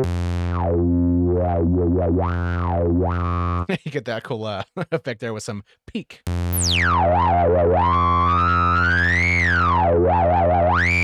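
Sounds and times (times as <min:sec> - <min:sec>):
synth note with resonant filter sweep: 0:06.3 - 0:11.0.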